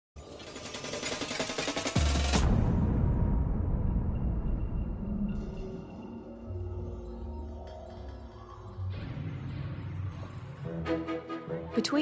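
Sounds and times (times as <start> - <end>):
fast mechanical clatter: 0.2 - 2.5
music: 0.2 - 12.0.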